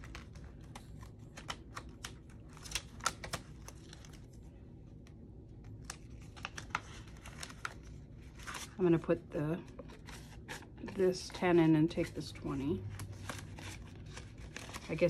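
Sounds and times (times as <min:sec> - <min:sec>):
paper bills crinkling: 0:00.0 - 0:04.4, 0:05.7 - 0:08.9, 0:12.4 - 0:15.0.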